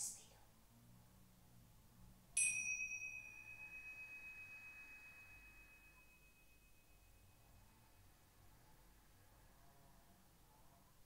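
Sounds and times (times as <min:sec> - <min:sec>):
cymbals ringing: 0:02.4 - 0:07.1.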